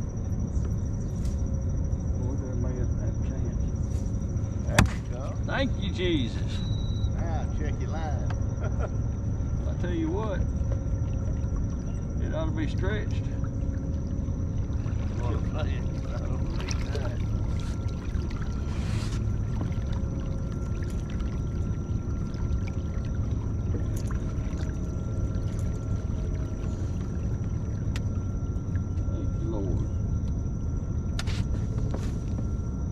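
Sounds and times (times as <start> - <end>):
faint high whine: 0.0 - 32.9
low rumble on water: 0.0 - 32.9.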